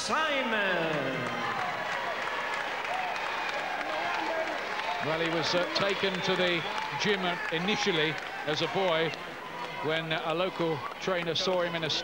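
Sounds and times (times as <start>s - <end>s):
crowd clapping: 0.4s - 12.0s.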